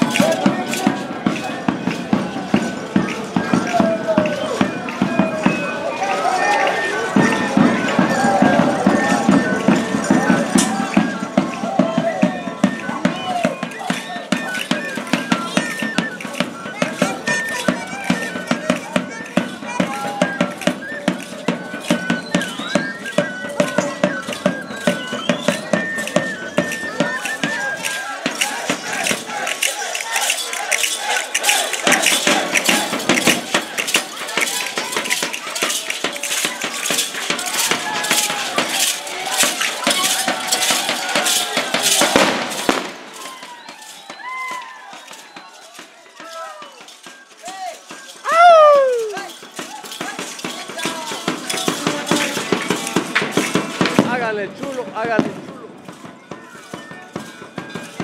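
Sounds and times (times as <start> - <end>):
rattling percussion beat: 0.0 - 58.0
voices of people: 0.0 - 58.0.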